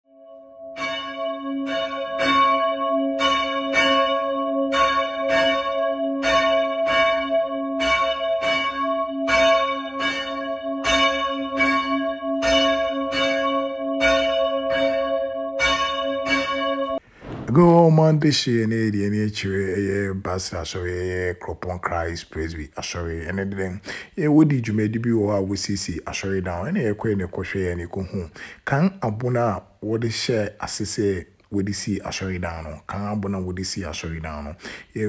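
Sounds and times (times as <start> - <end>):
church bell ringing: 0.1 - 17.0.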